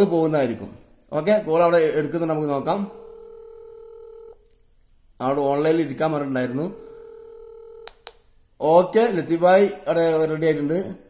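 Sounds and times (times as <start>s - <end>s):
phone ringback tone: 2.9s - 4.4s, 6.8s - 7.9s
click: 4.4s - 4.9s.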